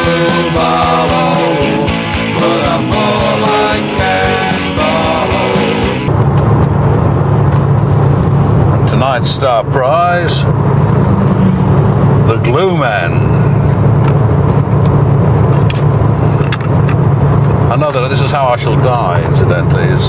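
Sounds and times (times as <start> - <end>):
car engine and road drone: 0.0 - 20.0.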